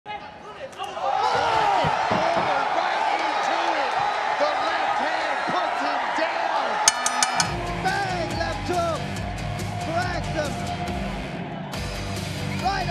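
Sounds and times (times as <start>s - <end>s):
arena crowd noise: 0.1s - 12.9s
bass-heavy music: 7.4s - 12.9s.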